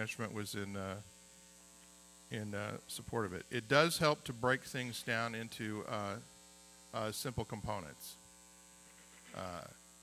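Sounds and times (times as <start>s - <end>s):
electrical mains hum: 0.0s - 10.0s
person saying uh: 9.4s - 9.8s.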